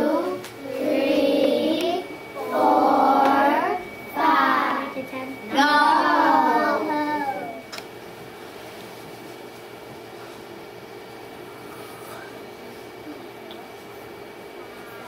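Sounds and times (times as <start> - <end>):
young children chanting: 0.0 - 7.6
low room hum: 0.0 - 15.0.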